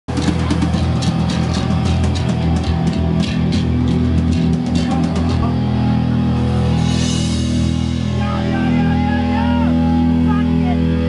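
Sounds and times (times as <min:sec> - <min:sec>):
distorted guitar and bass: 0:00.0 - 0:11.0
fast drums and cymbals: 0:00.1 - 0:05.5.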